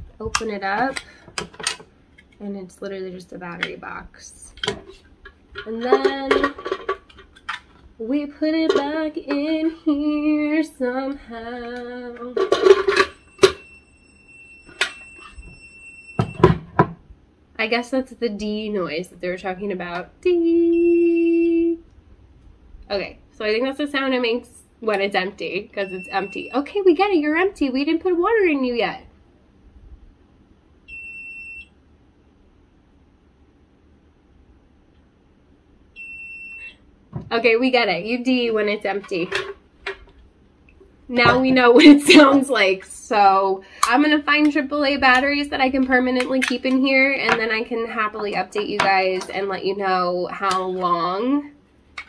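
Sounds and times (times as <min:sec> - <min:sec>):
long high-pitched alarm beep: 0:13.0 - 0:16.5, 0:25.8 - 0:26.7, 0:30.9 - 0:31.7, 0:36.0 - 0:36.8.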